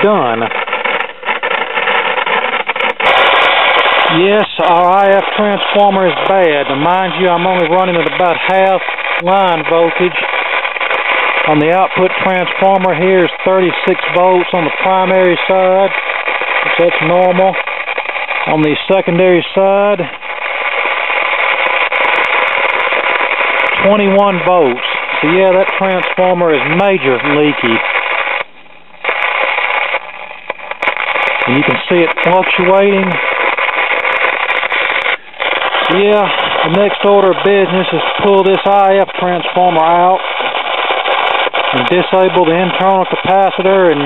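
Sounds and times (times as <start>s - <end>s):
radio crackling static: 0.0s - 44.0s.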